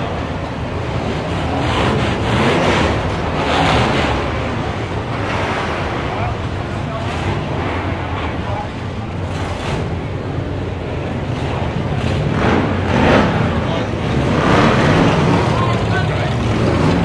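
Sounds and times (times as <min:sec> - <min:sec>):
people talking: 0:05.9 - 0:17.0.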